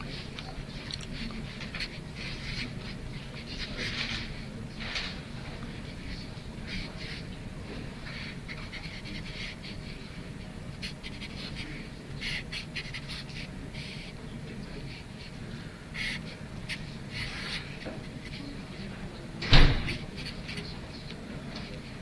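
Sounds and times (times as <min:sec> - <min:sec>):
low room hum: 0:00.0 - 0:22.0
marker scratching on whiteboard: 0:01.1 - 0:22.0.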